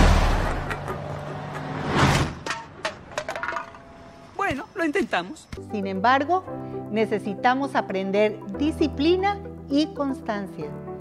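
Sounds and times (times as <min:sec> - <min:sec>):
person speaking: 0:04.3 - 0:05.8.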